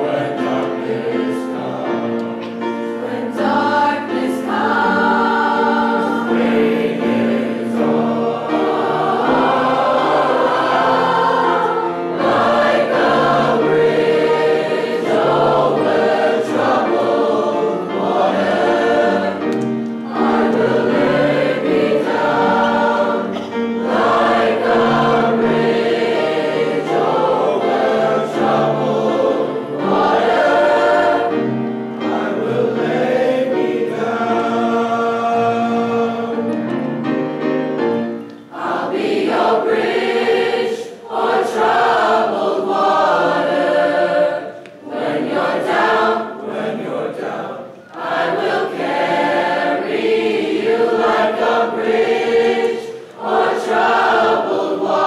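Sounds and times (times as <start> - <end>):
choir singing: 0.0 - 55.0.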